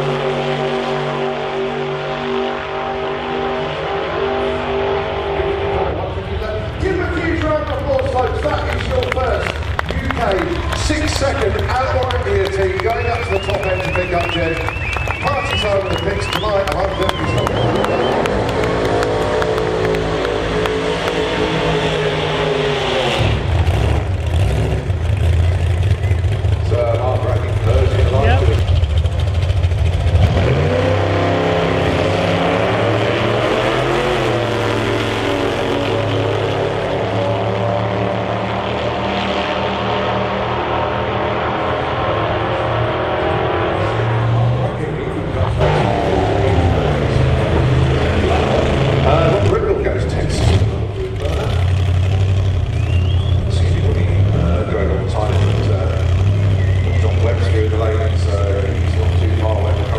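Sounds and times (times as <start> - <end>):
drag racing car engines revving: 0.0 - 59.9.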